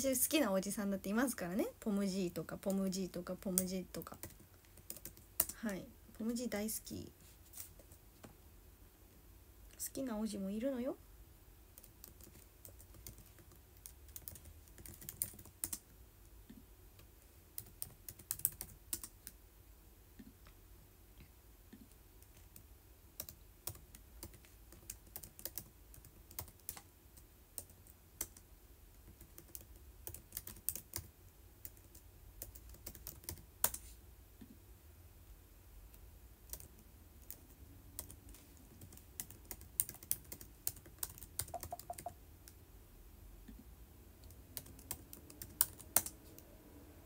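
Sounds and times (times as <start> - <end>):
faint low room hum: 0.0 - 47.0.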